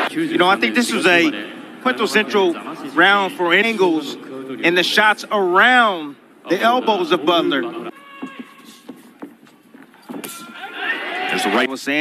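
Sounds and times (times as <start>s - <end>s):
faint arena background: 0.0s - 12.0s.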